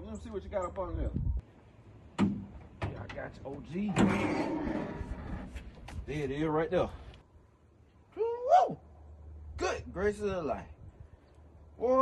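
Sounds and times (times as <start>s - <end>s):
hood scraping on hinges: 2.3s - 5.7s.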